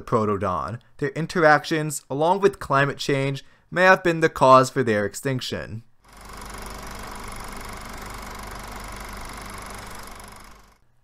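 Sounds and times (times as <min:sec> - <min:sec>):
machine-like buzzing drone: 0:06.1 - 0:10.8.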